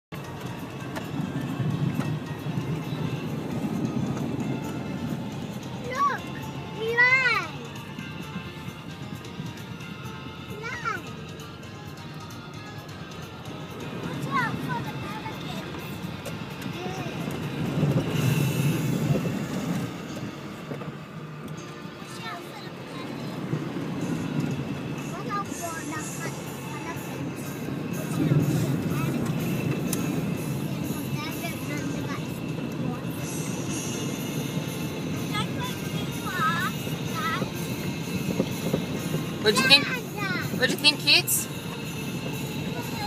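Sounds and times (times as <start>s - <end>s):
vehicle engine rumble: 0.1s - 43.0s
water washing under vehicle: 13.1s - 43.0s.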